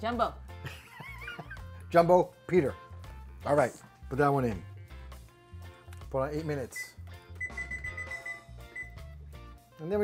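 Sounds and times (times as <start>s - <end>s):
background music with low beat: 0.0s - 10.0s
high electronic beeps: 6.8s - 9.0s.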